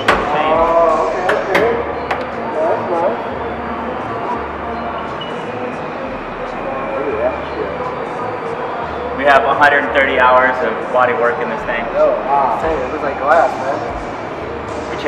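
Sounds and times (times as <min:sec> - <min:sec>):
people talking and exclaiming: 0:00.0 - 0:15.0.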